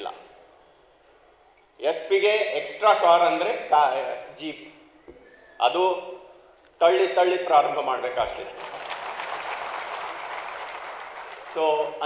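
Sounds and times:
audience applause: 0:08.6 - 0:11.6.

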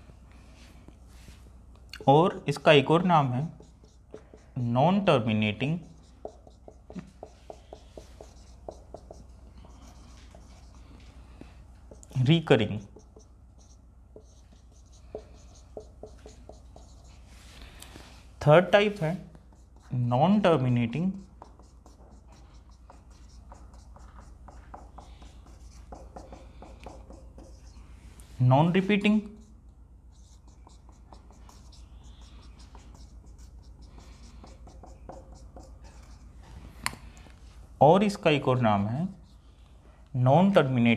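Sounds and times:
marker writing on whiteboard: 0:02.0 - 0:39.7.

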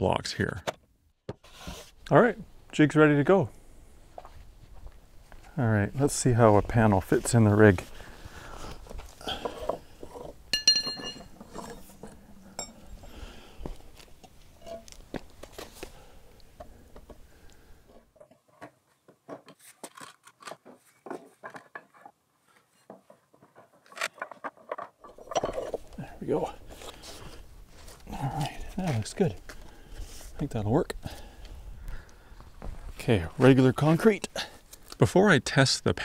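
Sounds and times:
ringing clink: 0:10.5 - 0:11.3, 0:12.6 - 0:12.8.

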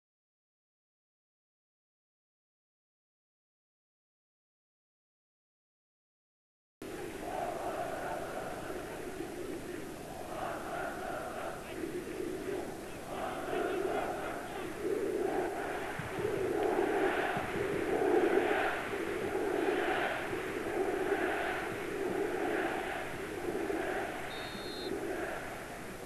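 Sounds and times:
stadium crowd chanting: 0:06.8 - 0:26.0.

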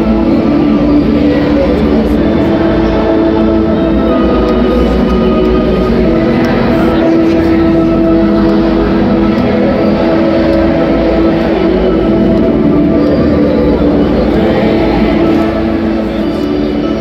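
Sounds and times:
crowd din: 0:00.0 - 0:17.0
crowd singing along: 0:00.0 - 0:17.0
song over loudspeakers: 0:00.0 - 0:17.0.

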